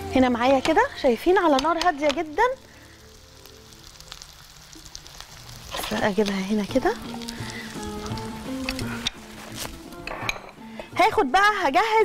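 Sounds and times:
background music: 0:00.0 - 0:12.0
meat sizzling in oil: 0:00.0 - 0:12.0
utensils and dishes clinking: 0:10.0 - 0:10.6.

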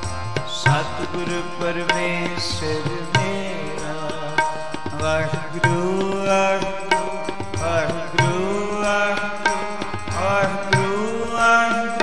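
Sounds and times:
harmonium drone: 0:00.0 - 0:12.0
man singing: 0:00.0 - 0:12.0
tabla strokes: 0:00.0 - 0:12.0.

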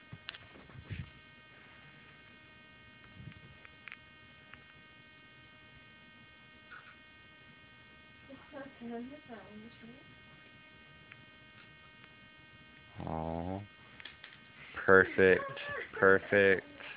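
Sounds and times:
faint electrical hum: 0:00.0 - 0:16.9.

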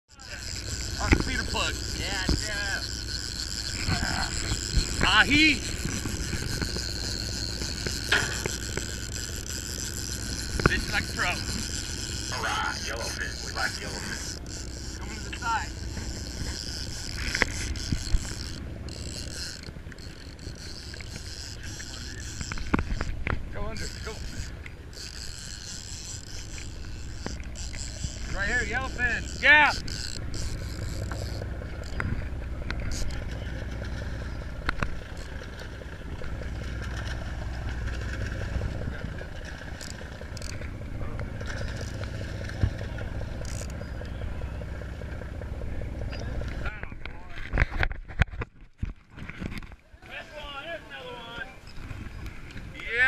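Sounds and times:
boat engine rumble: 0:00.0 - 0:53.0
wind: 0:00.0 - 0:53.0.

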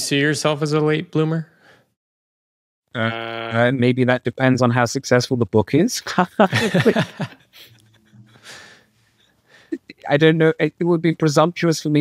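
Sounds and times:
intake of breath: 0:01.5 - 0:02.0, 0:08.3 - 0:09.8
person speaking: 0:05.2 - 0:08.8, 0:09.6 - 0:12.0
man laughing: 0:06.2 - 0:08.8
breathy exhale: 0:08.3 - 0:09.8.

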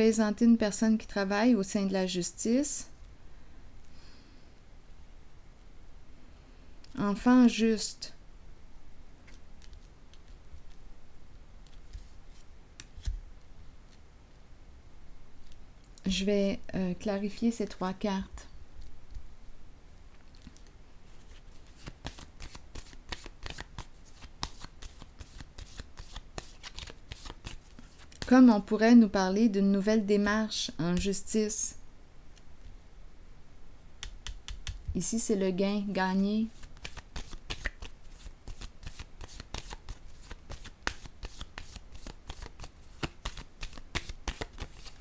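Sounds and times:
cards being shuffled: 0:09.2 - 0:10.8, 0:11.6 - 0:13.2, 0:20.3 - 0:28.3, 0:36.5 - 0:45.0.

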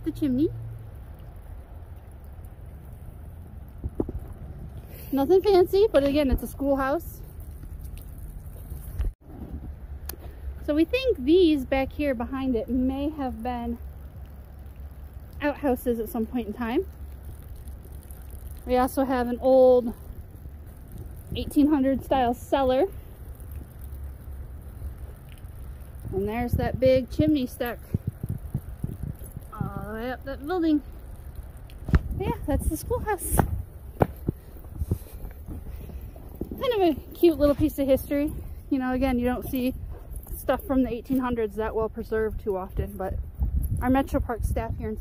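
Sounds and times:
wind rumble on microphone: 0:00.0 - 0:45.0
soft thumps of footsteps: 0:33.3 - 0:36.8.

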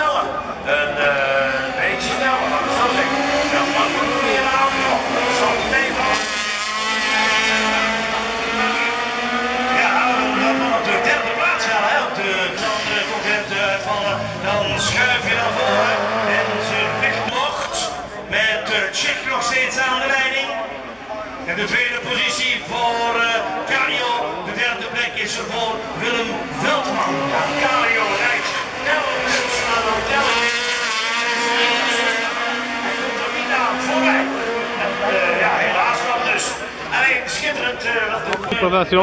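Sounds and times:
race car engines passing: 0:00.0 - 0:39.0.

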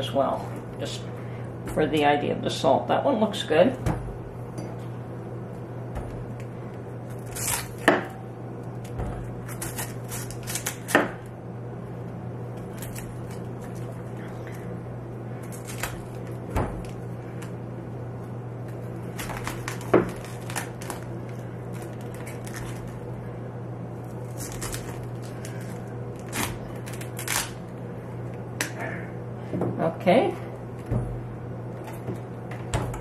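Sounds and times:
steady low hum: 0:00.0 - 0:33.0
cabbage leaves snapping: 0:07.1 - 0:08.0, 0:08.7 - 0:11.0, 0:15.4 - 0:17.6, 0:19.1 - 0:23.0, 0:24.1 - 0:27.6
knife cutting cabbage: 0:07.1 - 0:08.2, 0:08.8 - 0:11.3, 0:19.1 - 0:21.0, 0:21.7 - 0:22.9, 0:24.2 - 0:27.6.

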